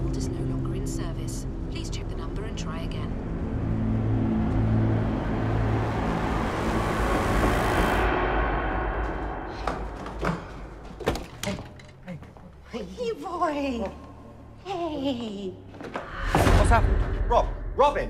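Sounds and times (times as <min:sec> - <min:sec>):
car road noise with low hum: 0:01.4 - 0:09.4.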